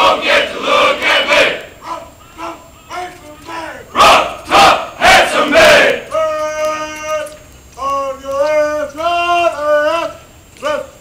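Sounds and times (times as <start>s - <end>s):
group shouting a marching cadence: 0.0s - 11.0s.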